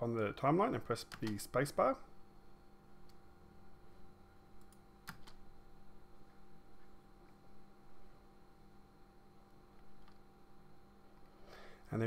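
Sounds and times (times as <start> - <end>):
faint steady hum: 0.0 - 12.0
keyboard and mouse clicks: 4.6 - 5.4, 9.8 - 10.2.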